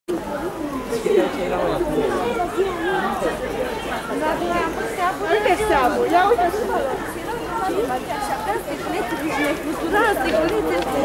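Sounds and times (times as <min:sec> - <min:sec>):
overlapping voices chattering: 0:00.1 - 0:11.0.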